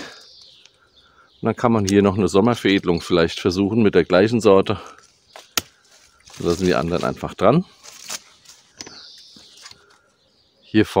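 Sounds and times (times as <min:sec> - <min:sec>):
leaves and twigs rustling: 0:01.6 - 0:10.2.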